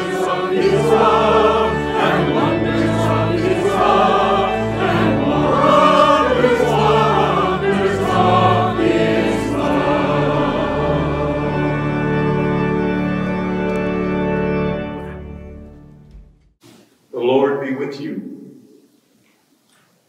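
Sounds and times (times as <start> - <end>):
choir singing a hymn: 0.0 - 14.3.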